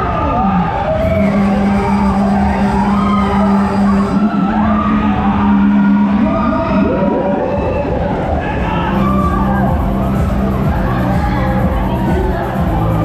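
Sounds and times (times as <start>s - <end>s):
loud ride music: 0.0s - 13.0s
steady low hum: 1.0s - 7.0s, 8.0s - 13.0s.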